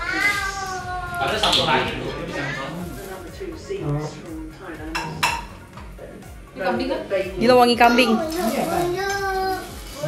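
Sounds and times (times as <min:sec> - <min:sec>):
plates and skewers clinking: 0:04.8 - 0:05.7.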